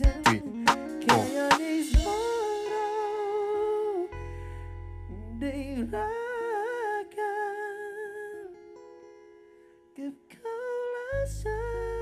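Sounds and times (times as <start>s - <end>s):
drum hit: 0.0s - 3.3s.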